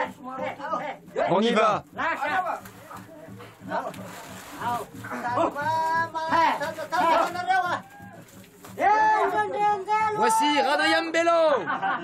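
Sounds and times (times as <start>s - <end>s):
people talking and calling out: 0.0s - 11.8s.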